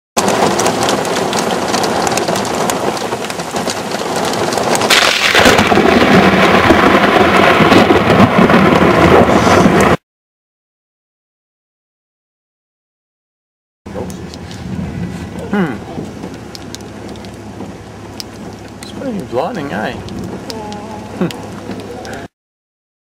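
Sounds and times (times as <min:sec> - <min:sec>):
heavy rain: 0:00.2 - 0:10.0, 0:13.9 - 0:22.3
thunderclap cracking and rumbling: 0:00.2 - 0:10.0, 0:13.9 - 0:22.3.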